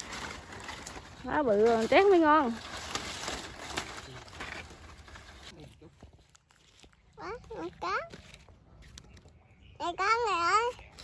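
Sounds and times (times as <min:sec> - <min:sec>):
palm leaves rustling and crackling: 0:00.0 - 0:09.4.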